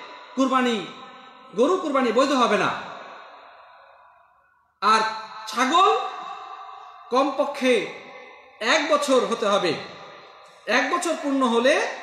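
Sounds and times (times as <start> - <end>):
man speaking with reverberation: 0.0 - 12.0.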